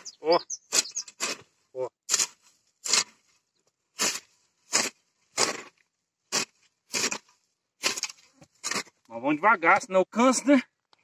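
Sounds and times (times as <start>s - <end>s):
hoe scraping through soil: 0.7s - 1.5s, 2.1s - 9.1s.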